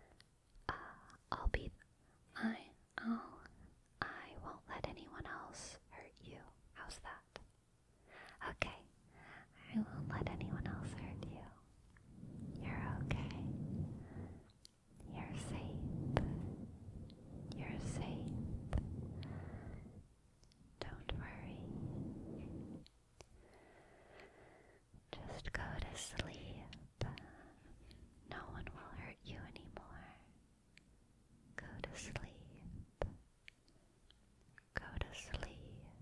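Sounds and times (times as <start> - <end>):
person whispering close to microphone: 0.0 - 7.5, 8.2 - 20.0, 20.8 - 22.9, 25.1 - 30.3, 31.6 - 33.2, 34.7 - 36.0
breathy sounds: 10.8 - 20.0.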